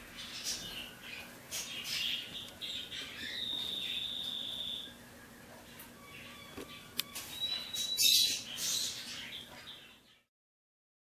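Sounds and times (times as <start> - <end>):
budgerigar chick cheeping: 5.7 - 9.5.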